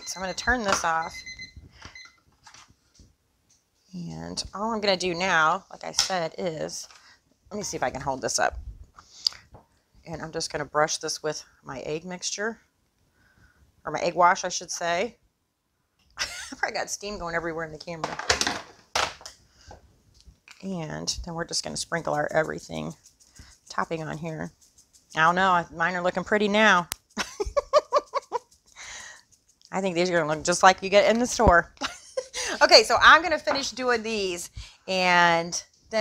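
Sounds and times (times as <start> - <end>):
kitchen timer beeping: 0.0 - 2.2.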